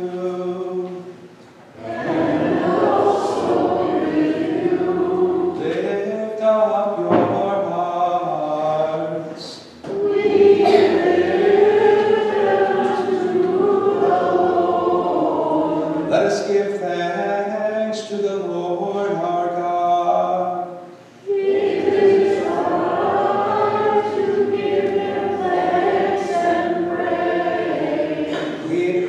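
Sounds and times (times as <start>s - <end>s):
group of voices singing: 1.7s - 16.7s, 21.2s - 29.0s.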